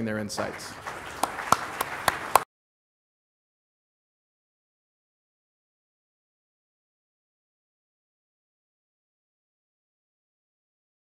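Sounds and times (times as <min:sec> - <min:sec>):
audience applause: 0:00.3 - 0:02.5
sharp individual claps: 0:00.4 - 0:02.5.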